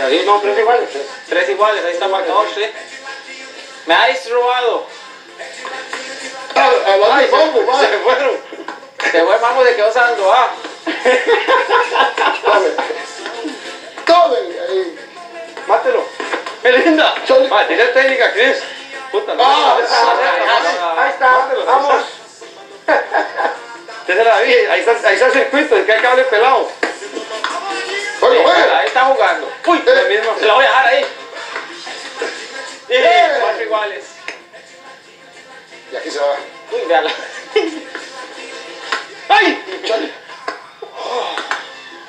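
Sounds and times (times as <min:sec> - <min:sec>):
television background music: 0:00.0 - 0:42.0.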